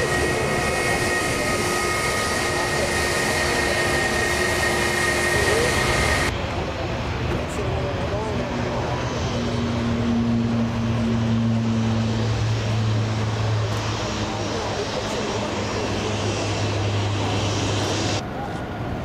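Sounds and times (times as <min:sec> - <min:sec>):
jet engines taxiing: 0:00.0 - 0:19.0.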